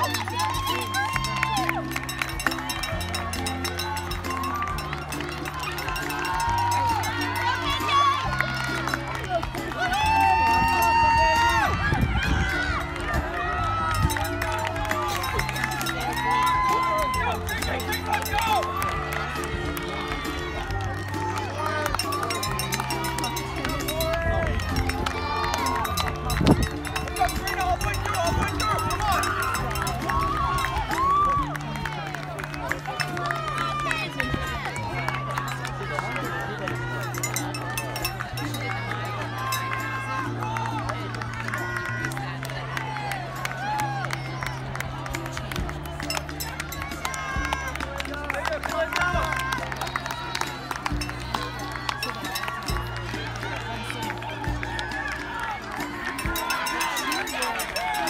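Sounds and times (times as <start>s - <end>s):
crowd calling out and chattering: 0.0s - 58.0s
music with low held chords: 0.0s - 58.0s.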